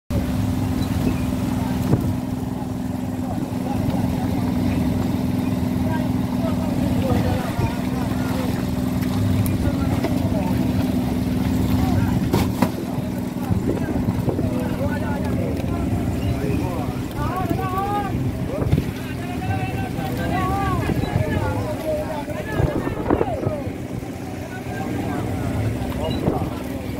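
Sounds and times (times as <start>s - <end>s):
boat engine humming: 0.1s - 26.9s.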